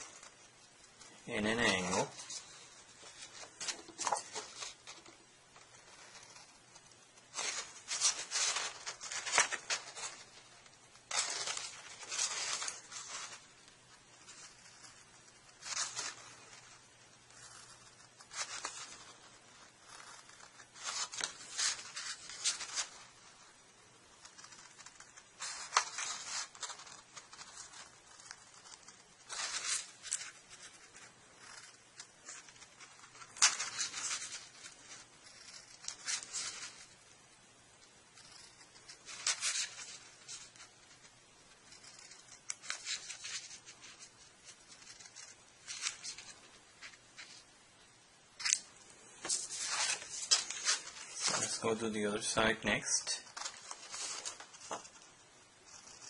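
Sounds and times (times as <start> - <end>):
scissors snipping paper: 11.0 - 13.4, 17.8 - 19.1, 24.2 - 36.9, 41.6 - 46.2.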